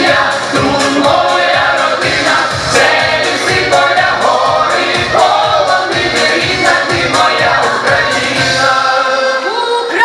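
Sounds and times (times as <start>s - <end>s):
accompaniment with steady beat: 0.0s - 9.3s
mixed choir singing folk song: 0.0s - 10.0s.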